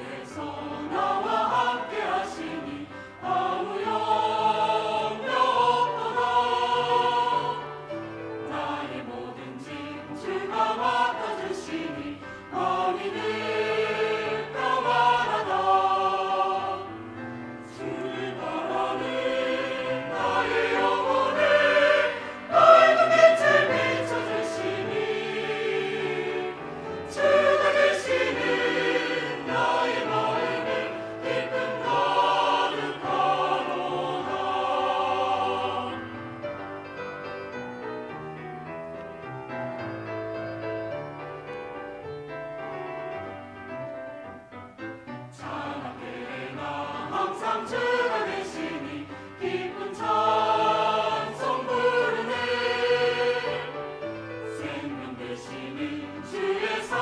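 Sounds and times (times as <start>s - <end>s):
choir singing a hymn: 0.0s - 37.8s, 45.3s - 57.0s.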